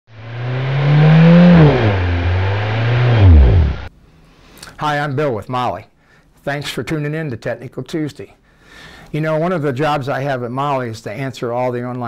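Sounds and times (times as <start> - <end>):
car engine revving: 0.1 - 3.9.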